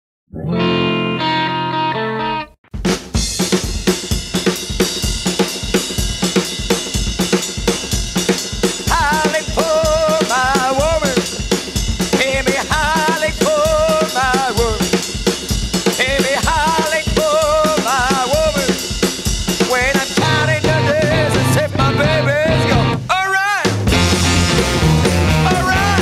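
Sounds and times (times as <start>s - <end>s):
band playing with drum beat: 2.7s - 26.0s.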